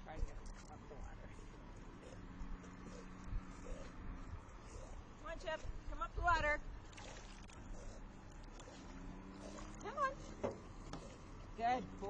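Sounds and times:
water lapping: 1.0s - 12.0s.

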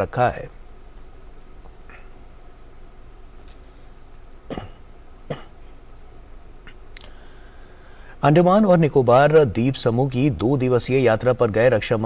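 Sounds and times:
person coughing: 4.5s - 5.6s.

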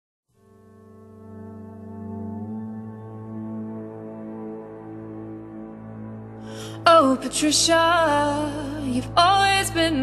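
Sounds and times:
sustained low chord: 0.3s - 10.0s.

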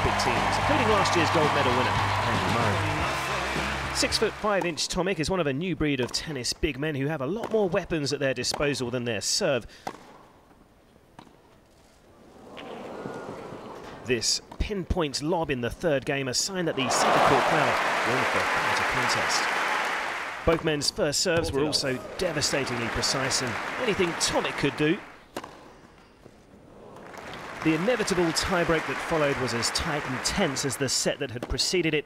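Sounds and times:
crowd noise: 0.0s - 4.8s, 12.2s - 14.1s, 16.6s - 20.8s, 21.4s - 25.2s, 26.7s - 30.9s
crowd hush: 16.7s - 20.4s.

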